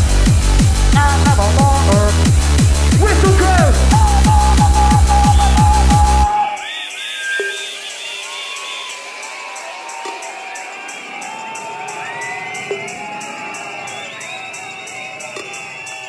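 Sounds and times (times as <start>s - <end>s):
fast high ticking dance beat: 0.0s - 16.0s
crowd cheering and whistling: 2.9s - 16.0s.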